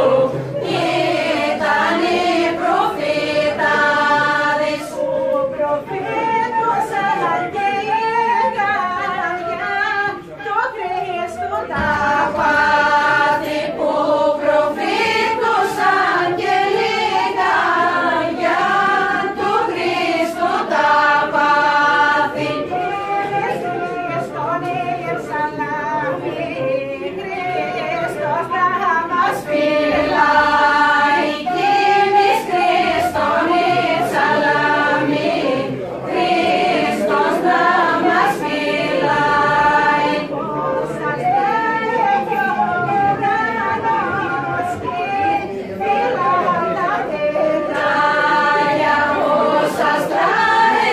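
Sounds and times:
group singing a carol unaccompanied: 0:00.0 - 0:50.9
wooden folk pipe playing: 0:00.0 - 0:50.9.

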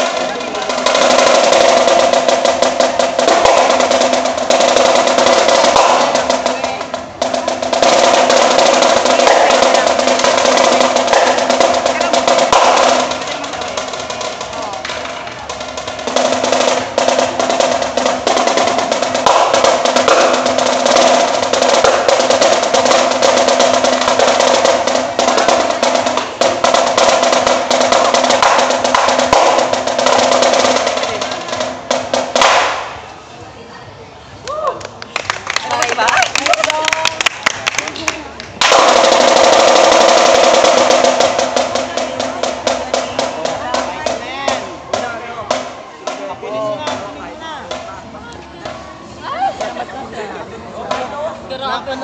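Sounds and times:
marching snare drum rolls: 0:00.0 - 0:33.3, 0:35.2 - 0:51.6.

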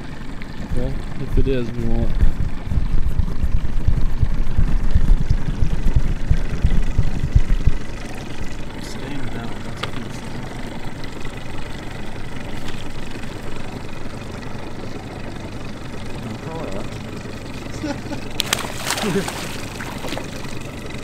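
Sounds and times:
outboard motor idling: 0:00.0 - 0:21.0
wind buffeting microphone: 0:00.6 - 0:08.7.

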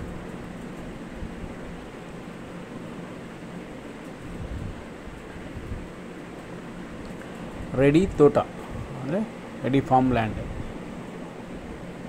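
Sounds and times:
wind buffeting microphone: 0:04.3 - 0:06.0.

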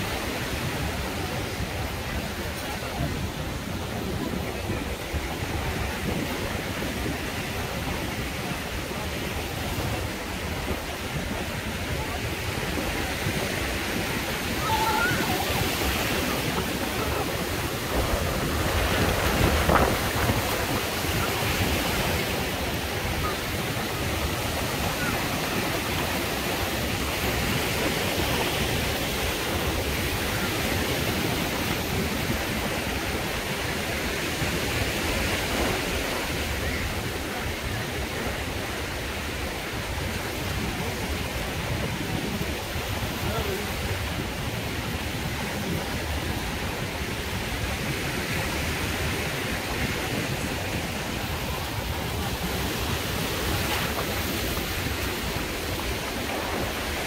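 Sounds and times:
small waves breaking on sand: 0:00.0 - 0:57.0.

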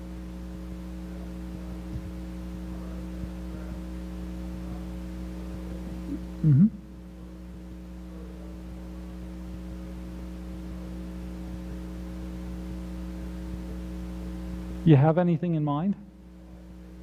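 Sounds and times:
low electrical hum: 0:00.0 - 0:17.0
man talking: 0:14.8 - 0:16.1.

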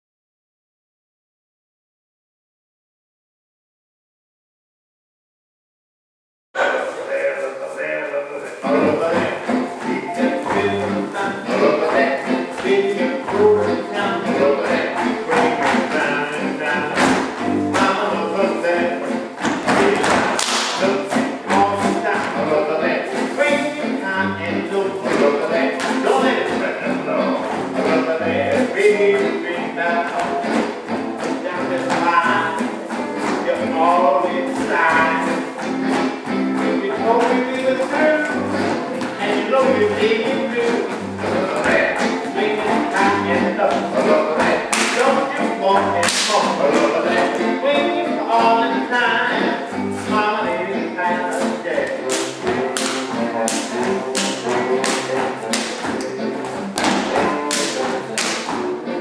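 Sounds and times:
swing jazz music: 0:06.6 - 0:59.0.

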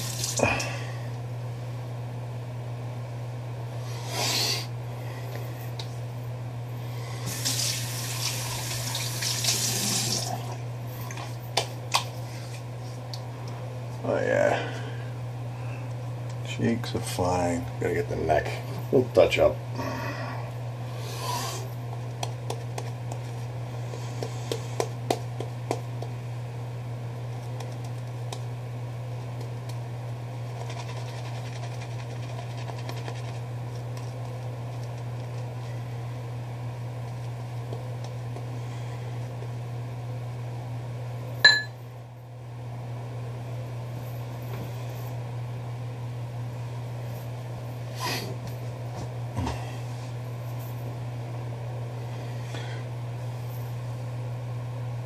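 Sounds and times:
steady low hum: 0:00.0 - 0:55.0
shaving brush lathering: 0:30.4 - 0:33.5.

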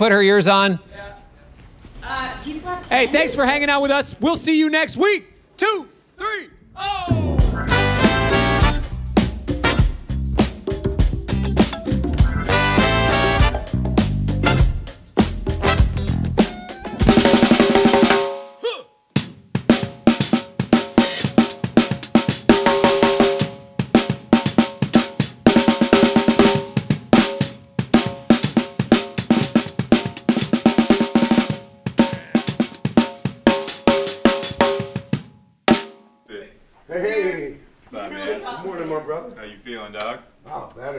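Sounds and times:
bass drum hits: 0:07.0 - 0:11.2
snare drum strokes and rolls: 0:07.2 - 0:11.1, 0:11.7 - 0:18.4, 0:19.6 - 0:35.9.

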